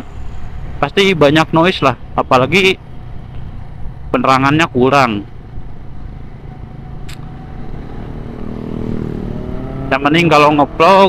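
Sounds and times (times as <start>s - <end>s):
road and wind rumble: 0.0s - 11.0s
motorcycle engine running: 5.3s - 10.8s.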